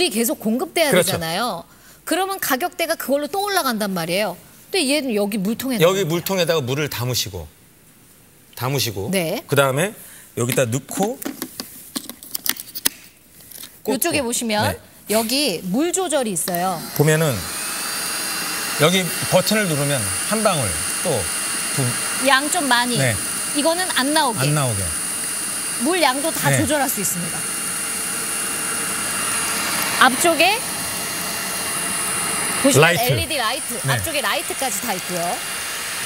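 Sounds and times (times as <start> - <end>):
stick vacuum running: 16.4 - 36.0.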